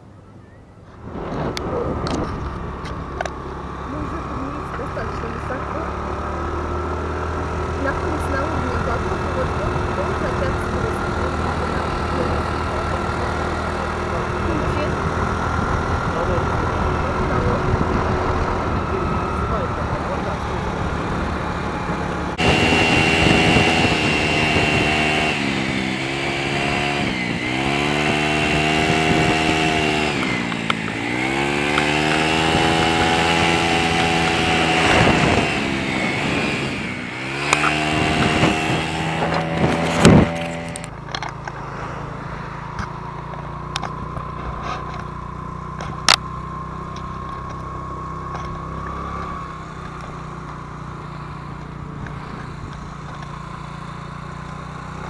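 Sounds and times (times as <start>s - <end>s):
small motorbike engine: 0.0s - 55.0s
wind rushing over microphone: 1.0s - 4.7s, 6.8s - 40.9s.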